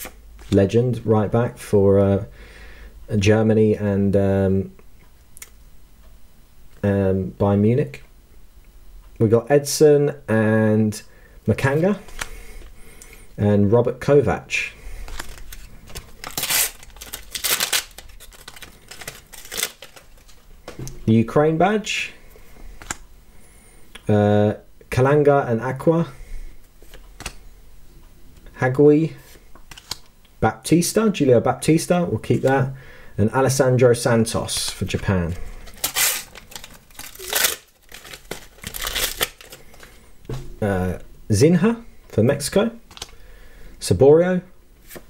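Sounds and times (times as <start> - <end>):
wrapper crinkling: 15.0 - 20.5, 34.7 - 40.0
sticker packet being torn open: 15.1 - 20.4, 35.7 - 39.8.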